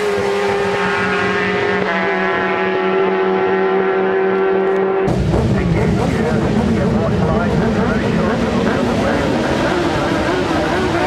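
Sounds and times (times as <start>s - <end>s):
motorcycle engines running: 0.0s - 11.0s
voices: 5.3s - 11.0s.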